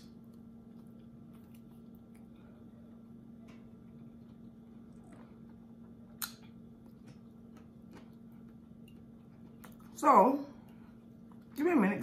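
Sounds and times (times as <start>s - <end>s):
closed-mouth chewing: 0.0s - 10.0s
steady low hum: 0.0s - 12.0s.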